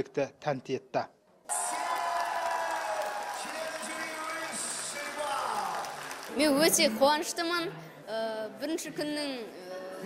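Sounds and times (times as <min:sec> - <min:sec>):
audience applauding and cheering: 0:01.5 - 0:07.0.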